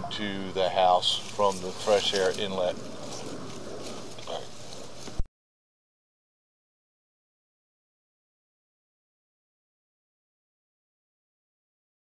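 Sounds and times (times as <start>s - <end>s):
steady background hiss: 0.0s - 5.2s.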